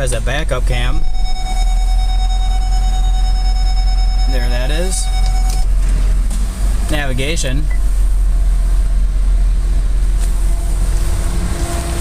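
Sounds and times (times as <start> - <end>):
diesel engine idling: 0.0 - 12.0
steady electronic warning tone: 0.9 - 5.7.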